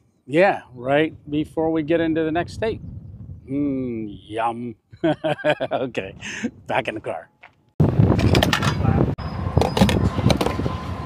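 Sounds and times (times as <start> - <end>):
loud gas station forecourt noise: 7.9 - 11.0.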